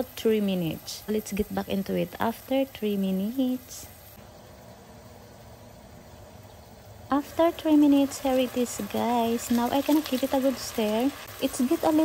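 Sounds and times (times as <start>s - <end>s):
meat simmering in a pan: 0.0s - 12.0s.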